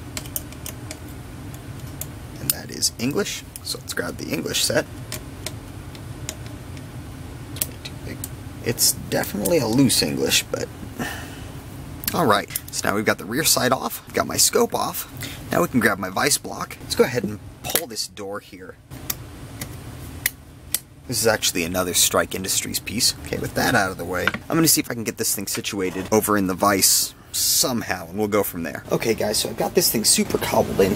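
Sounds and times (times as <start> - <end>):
low hum: 0.0 - 30.9.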